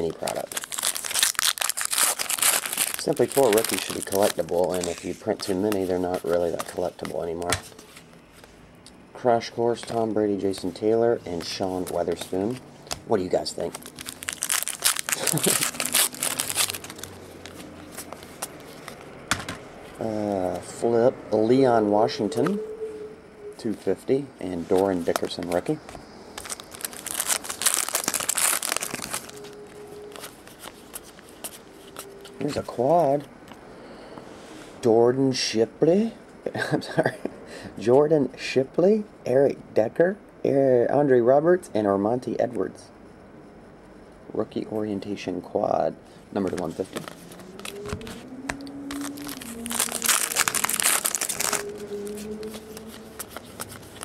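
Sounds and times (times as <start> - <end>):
wrapper crinkling and tearing: 0.0 - 7.5, 11.4 - 19.0, 24.7 - 32.6, 46.4 - 54.0
cards being handled: 0.0 - 8.6, 9.7 - 19.7, 24.6 - 33.6, 46.4 - 54.0.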